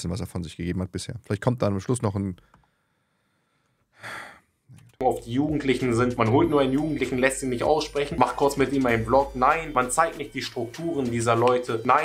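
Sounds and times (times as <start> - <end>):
person breathing in: 2.4 - 4.5.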